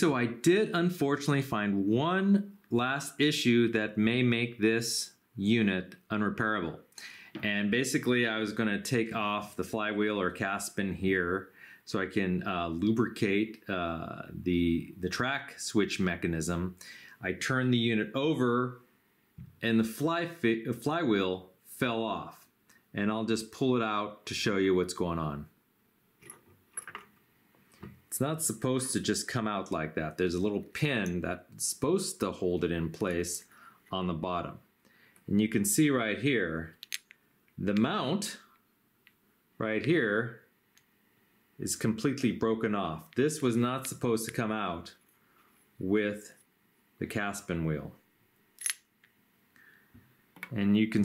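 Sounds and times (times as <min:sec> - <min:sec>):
faint clicks and handling noise: 0:36.7 - 0:37.9.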